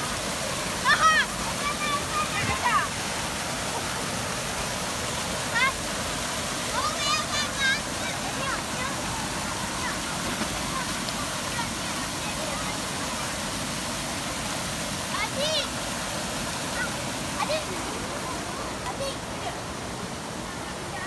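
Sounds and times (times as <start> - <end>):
fountain water rushing: 0.0 - 21.0
children shouting and squealing: 0.7 - 3.0, 6.6 - 12.9.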